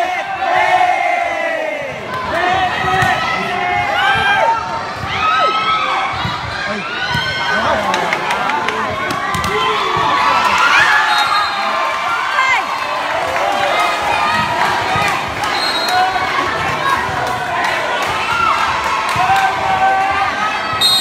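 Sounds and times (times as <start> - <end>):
crowd of young voices cheering: 0.0 - 21.0
volleyball slaps: 7.1 - 10.9.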